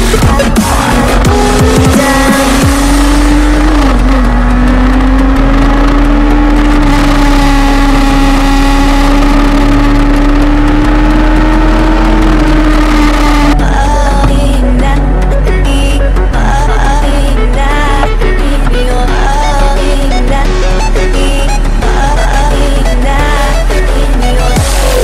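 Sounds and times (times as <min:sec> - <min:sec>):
motorcycle engine at high revs: 0:00.0 - 0:15.1
wind and road noise: 0:00.0 - 0:19.6.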